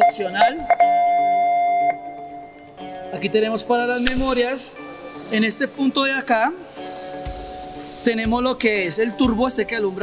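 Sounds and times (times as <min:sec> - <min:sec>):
quiet guitar music: 0:00.0 - 0:10.0.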